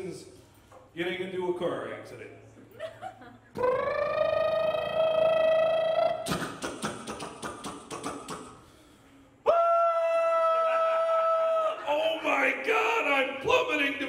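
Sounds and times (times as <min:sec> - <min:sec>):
crackling mouth noises: 0:03.6 - 0:08.8
man wailing vocally: 0:09.5 - 0:14.0.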